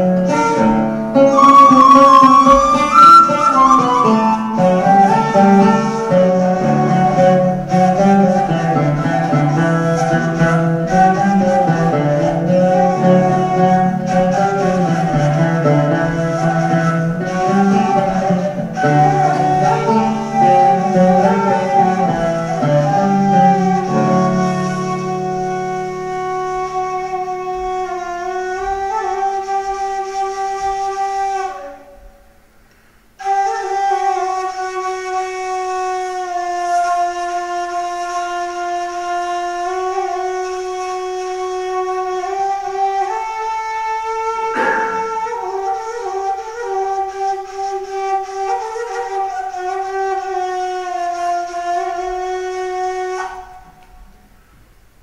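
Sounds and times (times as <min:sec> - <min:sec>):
end-blown flute melody: 0:00.0 - 0:32.4, 0:33.2 - 0:54.4.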